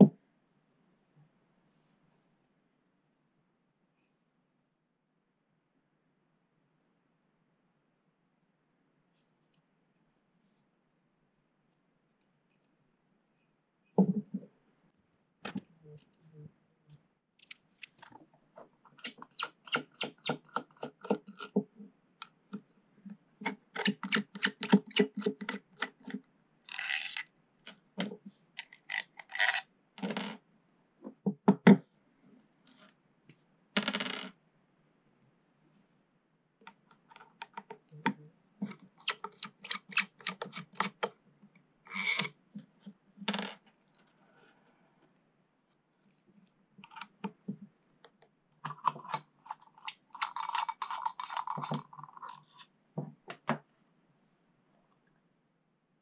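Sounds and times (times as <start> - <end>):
metal screws clinking: 49.5 - 52.4.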